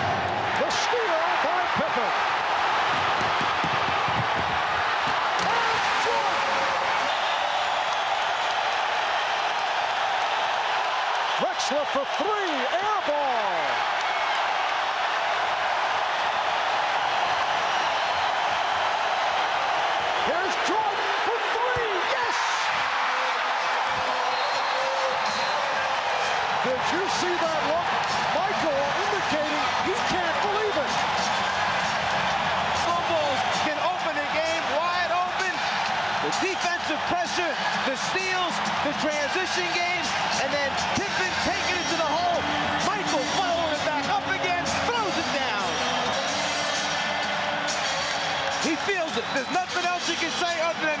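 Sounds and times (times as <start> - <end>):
crowd cheering: 0.0 - 51.0
basketball bouncing: 2.8 - 5.5.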